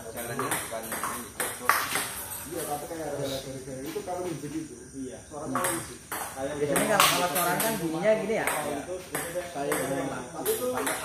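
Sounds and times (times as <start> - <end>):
men talking in background: 0.0 - 11.0
table tennis ball clicking: 0.2 - 2.2, 5.5 - 11.0.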